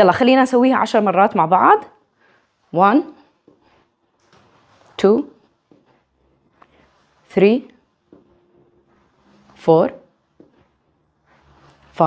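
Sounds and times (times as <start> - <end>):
faint movement noise: 0.5 - 12.0.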